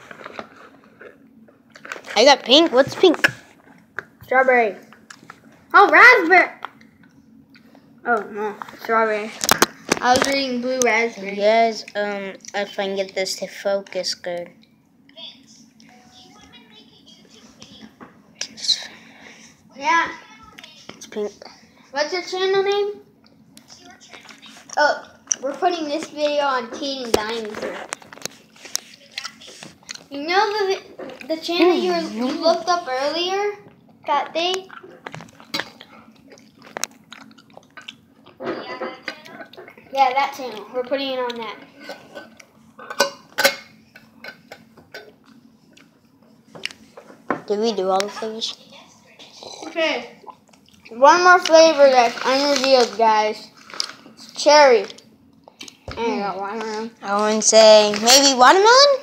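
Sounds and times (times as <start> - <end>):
chewing gummy candy: 27.9 - 30.2, 33.9 - 38.4.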